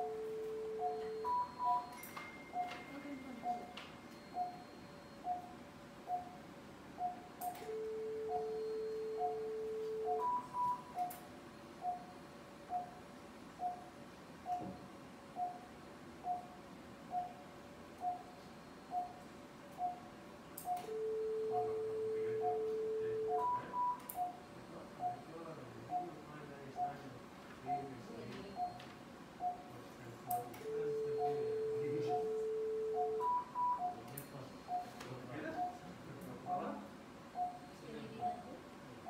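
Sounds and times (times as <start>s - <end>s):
patient monitor beeping: 0.0s - 39.0s.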